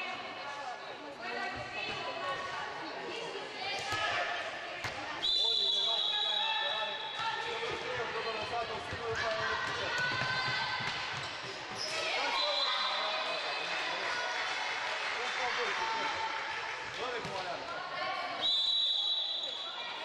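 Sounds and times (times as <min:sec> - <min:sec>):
shrill whistle tone: 0:05.2 - 0:07.1, 0:18.4 - 0:19.9.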